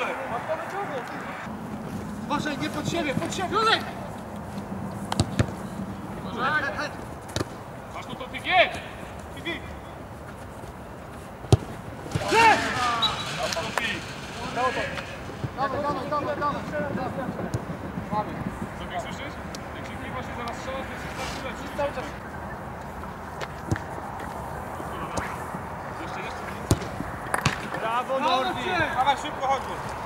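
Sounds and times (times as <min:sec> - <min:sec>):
players shouting: 0:00.0 - 0:01.5, 0:11.6 - 0:17.2
football kicked thuds: 0:05.1 - 0:05.6, 0:11.5 - 0:12.3, 0:26.6 - 0:27.7.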